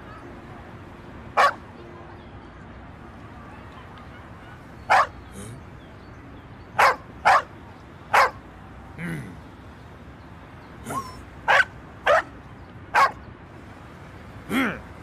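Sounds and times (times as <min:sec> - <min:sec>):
dog barking: 0:01.4 - 0:01.6, 0:04.9 - 0:05.2, 0:06.8 - 0:07.5, 0:08.1 - 0:08.4, 0:10.9 - 0:13.2.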